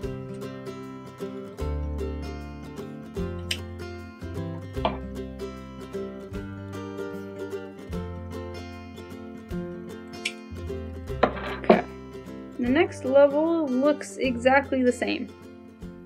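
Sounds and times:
plucked string instrument music: 0:00.0 - 0:16.0.

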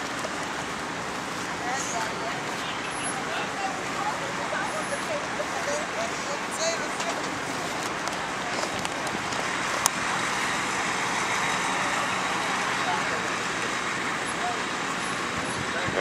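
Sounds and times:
road traffic noise: 0:00.0 - 0:16.0.

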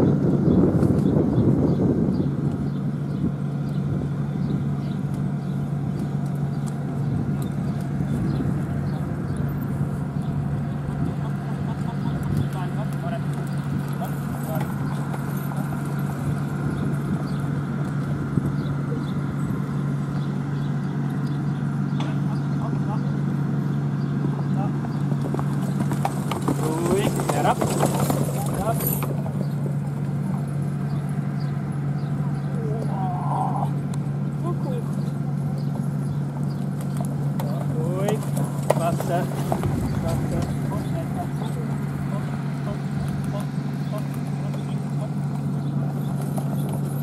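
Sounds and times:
steady low hum: 0:00.0 - 0:47.0
horse hoofbeats trotting: 0:02.2 - 0:32.9, 0:33.8 - 0:47.0
background voices: 0:36.8 - 0:47.0.

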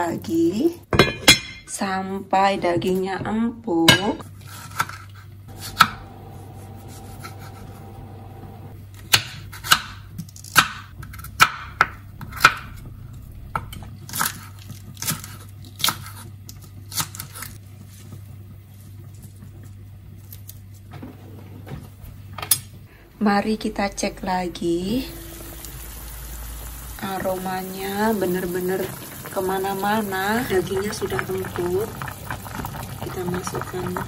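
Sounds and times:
steady low hum: 0:05.4 - 0:34.0.

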